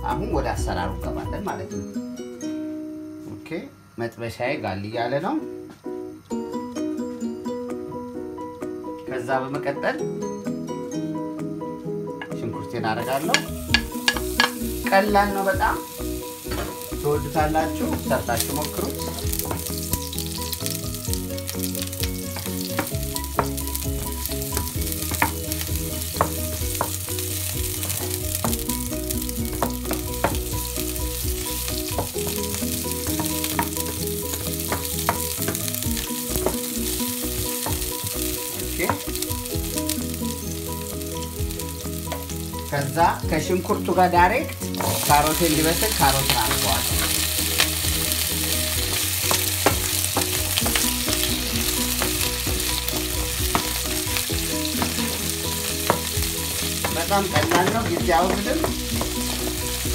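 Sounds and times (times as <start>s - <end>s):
onions sizzling in oil: 12.9s - 59.9s.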